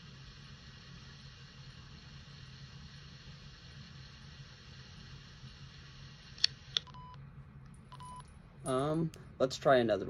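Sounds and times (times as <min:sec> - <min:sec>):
faint hum: 0:00.0 - 0:10.0
low hiss: 0:00.0 - 0:10.0
short electronic beeps: 0:06.9 - 0:07.2, 0:07.9 - 0:08.3.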